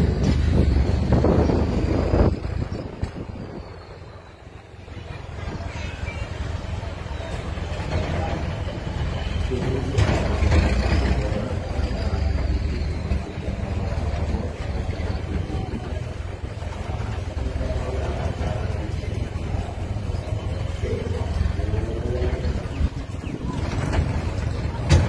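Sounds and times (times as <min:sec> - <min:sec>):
faint voices of people: 0:00.0 - 0:25.0.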